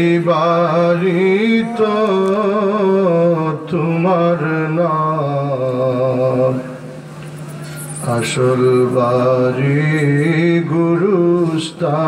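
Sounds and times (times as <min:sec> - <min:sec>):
man chanting a hymn: 0:00.0 - 0:06.8, 0:08.0 - 0:12.0.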